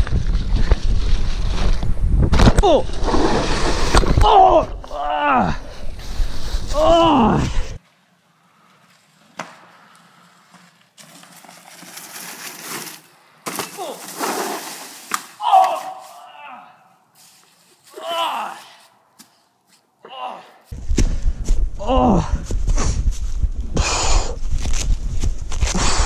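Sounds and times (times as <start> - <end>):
bike clattering over dry leaves: 8.6 - 16.2.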